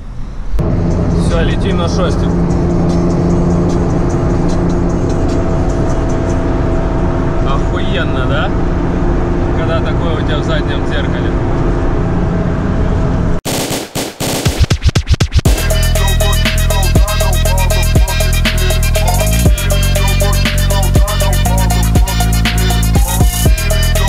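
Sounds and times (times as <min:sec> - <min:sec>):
car engine cruising: 0:00.0 - 0:13.4, 0:15.4 - 0:24.0
road and wind noise: 0:00.0 - 0:13.4
hip-hop music with scratching: 0:14.4 - 0:24.0.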